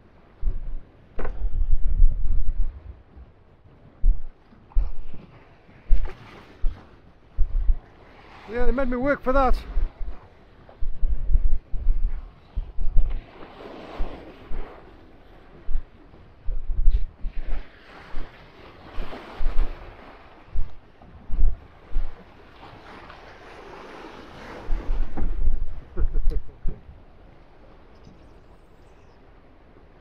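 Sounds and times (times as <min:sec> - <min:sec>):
sea waves breaking around boat: 0:00.0 - 0:30.0
wind gusting on microphone: 0:00.0 - 0:30.0.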